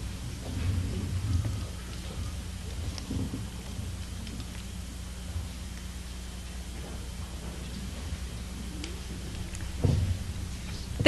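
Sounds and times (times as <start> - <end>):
low rumbles and thumps: 0.0 - 5.6, 6.6 - 11.0
low electrical hum: 0.0 - 11.0.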